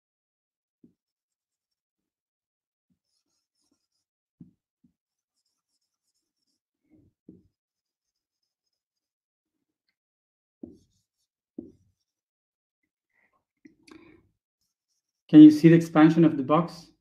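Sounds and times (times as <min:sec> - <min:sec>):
marker squeaking on whiteboard: 0:00.8 - 0:01.8, 0:03.0 - 0:09.2, 0:10.6 - 0:12.3, 0:14.0 - 0:15.4.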